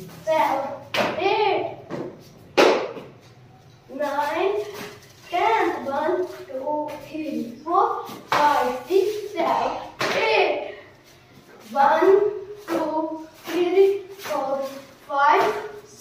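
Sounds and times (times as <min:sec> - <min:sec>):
loud clap: 0:02.6 - 0:03.0.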